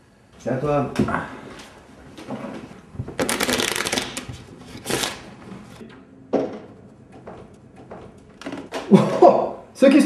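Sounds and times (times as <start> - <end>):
playing cards being shuffled: 3.2 - 5.3.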